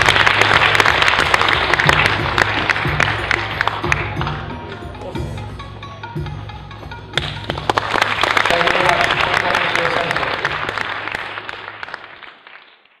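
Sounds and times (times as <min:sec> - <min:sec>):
audience applauding: 0:00.0 - 0:04.4, 0:07.2 - 0:13.0.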